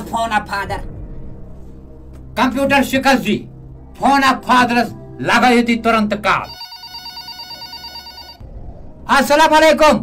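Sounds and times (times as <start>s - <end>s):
telephone ringing: 6.4s - 8.4s.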